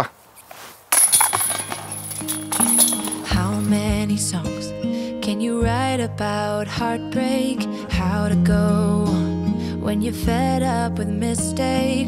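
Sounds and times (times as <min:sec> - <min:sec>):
background music: 0:01.1 - 0:12.0.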